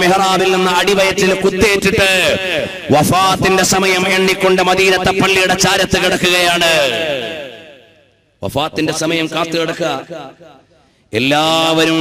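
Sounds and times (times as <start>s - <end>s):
man talking: 0.0s - 7.4s, 8.4s - 10.4s, 11.1s - 12.0s.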